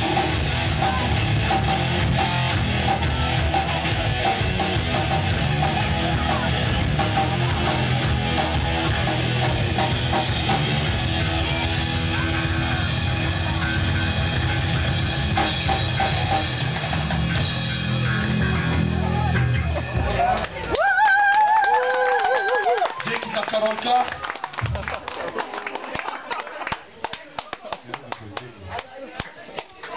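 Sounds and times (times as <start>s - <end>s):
live rock band playing: 0.0s - 20.8s
electric guitars: 0.0s - 21.1s
scattered applause: 19.1s - 29.9s.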